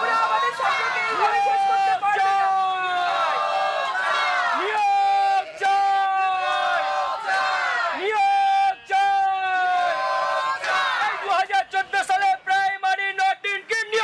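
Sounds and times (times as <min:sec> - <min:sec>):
crowd chanting slogans: 0:00.0 - 0:11.7.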